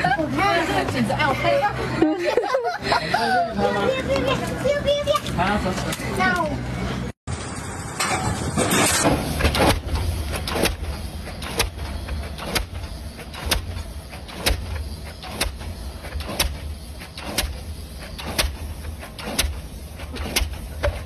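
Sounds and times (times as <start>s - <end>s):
pile hammer metallic blows: 7.3s - 21.0s
exhaust puffs: 8.4s - 21.0s.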